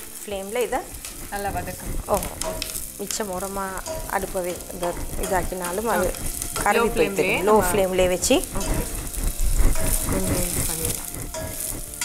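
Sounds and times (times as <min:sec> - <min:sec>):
onions sizzling in hot oil: 0:00.0 - 0:12.0
spatula stirring in pot: 0:00.6 - 0:12.0
person talking: 0:04.7 - 0:08.8.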